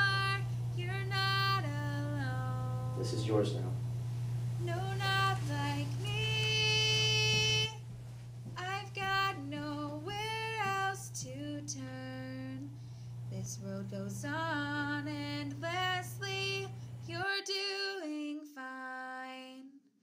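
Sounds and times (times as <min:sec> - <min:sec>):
woman singing unaccompanied: 0:00.0 - 0:03.0, 0:04.6 - 0:07.8, 0:08.5 - 0:19.9.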